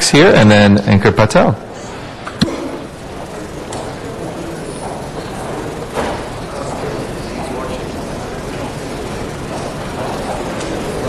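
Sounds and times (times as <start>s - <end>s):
room noise rumble and hiss: 0.0s - 11.0s.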